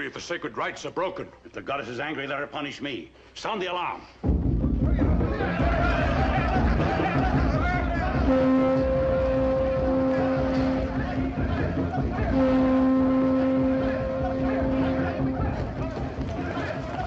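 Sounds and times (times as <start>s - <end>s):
crowd commotion: 4.7s - 17.0s
alarm horn blasts: 8.2s - 15.6s.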